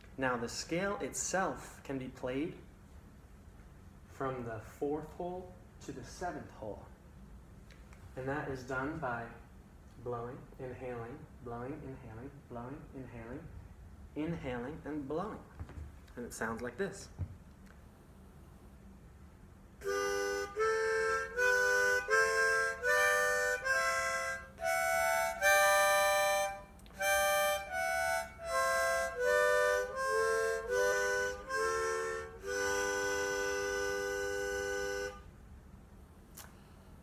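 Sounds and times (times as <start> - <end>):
harmonica playing a scale: 19.8 - 35.3.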